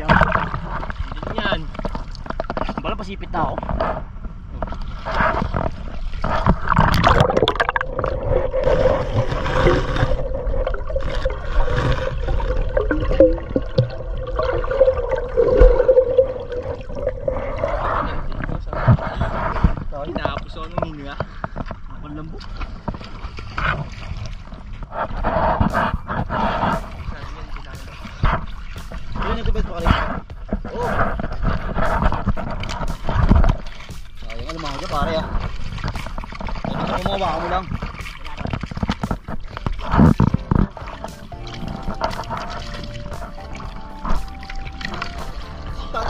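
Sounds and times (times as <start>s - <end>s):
sea water splashing: 0.0s - 46.0s.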